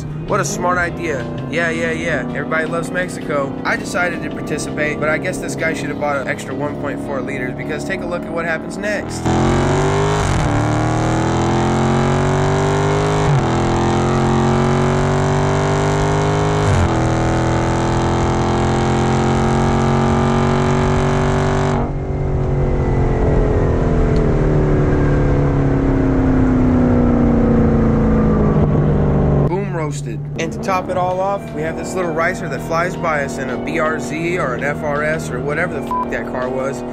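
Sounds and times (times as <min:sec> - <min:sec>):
music: 0:00.0 - 0:08.0, 0:31.1 - 0:36.4
person speaking: 0:00.0 - 0:09.3, 0:29.5 - 0:36.6
car engine revving at full throttle: 0:00.0 - 0:36.9.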